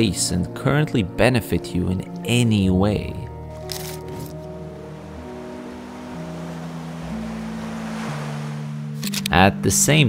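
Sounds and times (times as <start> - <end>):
soft low background music: 0.0 - 10.0
waves breaking: 3.7 - 9.3.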